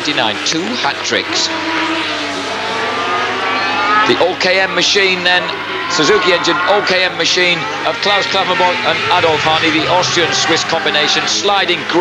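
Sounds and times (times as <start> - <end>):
racing engines revving: 0.0 - 12.0.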